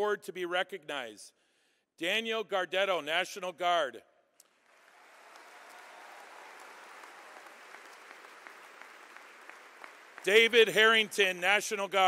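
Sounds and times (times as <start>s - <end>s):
distant audience applauding: 4.6s - 11.8s.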